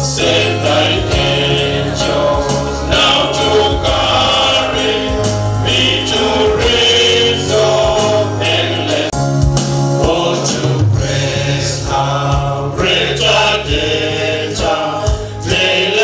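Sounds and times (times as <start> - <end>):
men's choir singing a hymn: 0.0 - 16.0.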